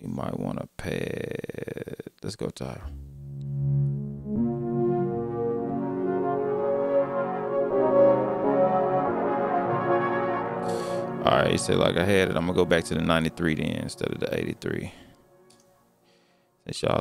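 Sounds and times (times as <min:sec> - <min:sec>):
synthesizer pad chords: 0:02.8 - 0:16.1.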